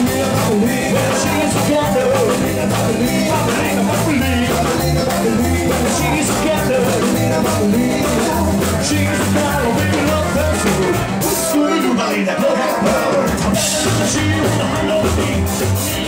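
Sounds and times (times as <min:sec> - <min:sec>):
drum kit: 0:00.0 - 0:16.0
electric guitar: 0:00.0 - 0:16.0
upright double bass: 0:00.0 - 0:16.0.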